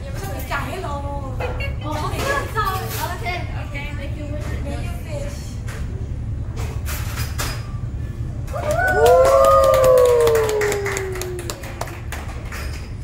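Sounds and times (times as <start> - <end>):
steady low hum: 0.0 - 13.0
people giving drawn-out woooo: 8.5 - 11.6.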